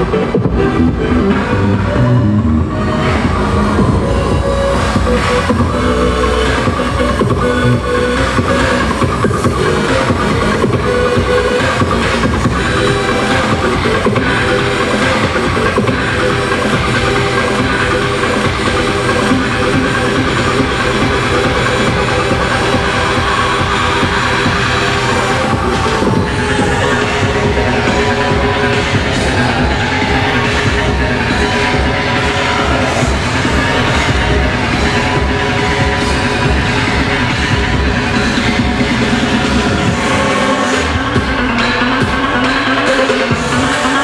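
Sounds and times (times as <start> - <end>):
loud live electronic music: 0.0 - 44.0.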